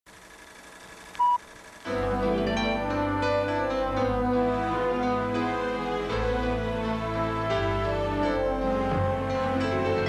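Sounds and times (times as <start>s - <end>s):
tape hiss: 0.1s - 6.2s
music: 1.9s - 10.0s.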